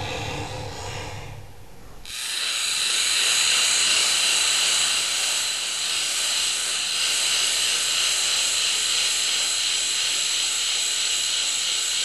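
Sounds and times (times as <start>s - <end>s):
loud steady hiss: 2.1s - 12.0s.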